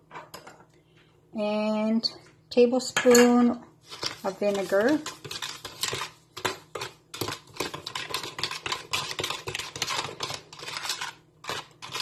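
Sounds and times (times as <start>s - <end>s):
metal spoon scraping plastic tub: 3.8s - 12.0s.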